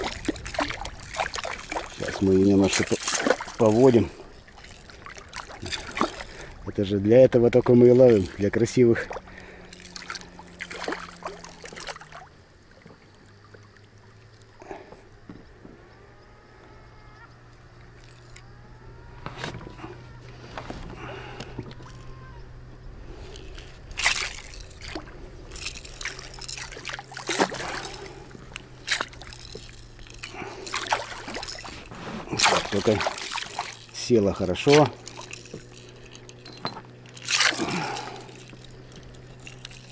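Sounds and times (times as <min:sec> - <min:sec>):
fish thrashing in water: 0:00.0 - 0:06.8, 0:07.6 - 0:14.9, 0:17.8 - 0:18.5, 0:23.0 - 0:39.9
water splashing: 0:00.0 - 0:14.9, 0:17.8 - 0:18.5, 0:23.0 - 0:39.9
low steady hum: 0:00.0 - 0:39.9.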